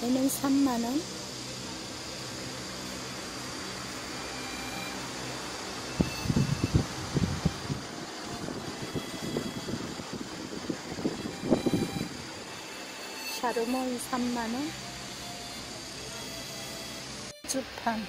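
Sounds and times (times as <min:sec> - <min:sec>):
steady hum and hiss: 0:00.0 - 0:18.0.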